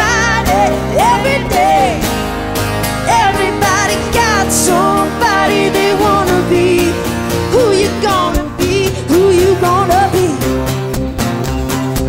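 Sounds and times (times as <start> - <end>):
acoustic guitars: 0.0 - 12.0
keyboard: 0.0 - 12.0
female vocals: 3.0 - 10.5.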